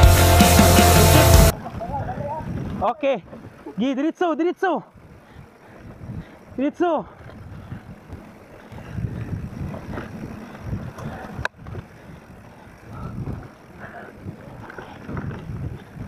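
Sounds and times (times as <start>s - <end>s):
bike tyre rumble and rattle: 1.4s - 4.1s, 4.8s - 16.0s
wind buffeting microphone: 1.5s - 3.8s, 4.9s - 16.0s.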